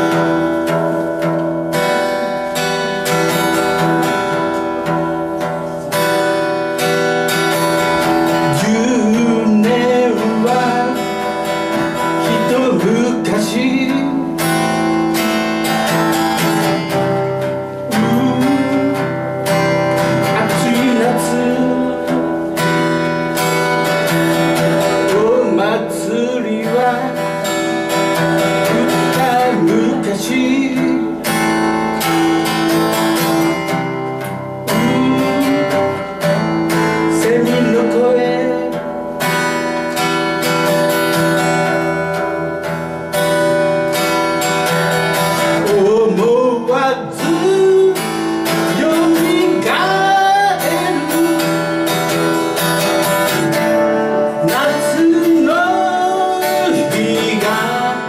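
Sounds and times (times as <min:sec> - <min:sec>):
acoustic guitar strumming: 0:00.0 - 0:58.0
man singing: 0:01.7 - 0:42.8, 0:45.1 - 0:58.0.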